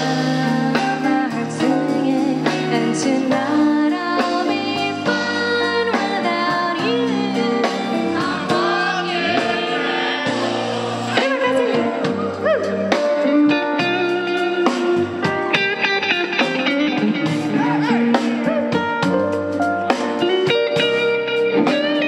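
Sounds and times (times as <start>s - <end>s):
woman singing: 0.0s - 9.6s, 11.2s - 13.3s
electric guitar: 0.0s - 22.0s
live band playing: 0.0s - 22.0s.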